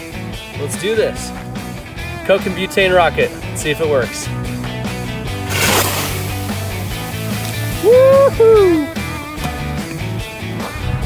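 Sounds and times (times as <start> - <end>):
background music: 0.0 - 11.0
bottle rocket rushing hiss: 5.4 - 9.0.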